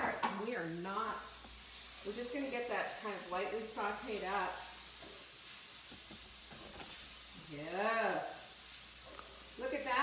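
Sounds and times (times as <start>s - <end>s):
vegetables sizzling in skillet: 0.0s - 10.0s.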